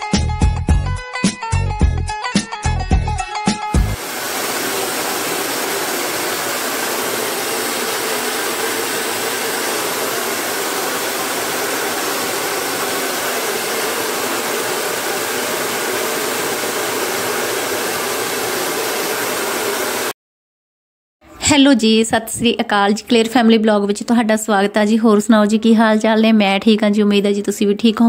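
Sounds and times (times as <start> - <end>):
hair dryer blowing air: 3.8 - 20.2.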